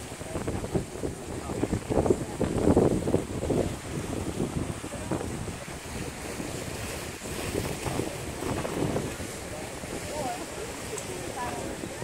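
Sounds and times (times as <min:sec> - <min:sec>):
waves washing against seawall: 0:00.0 - 0:12.0
wind buffeting microphone: 0:00.0 - 0:12.0.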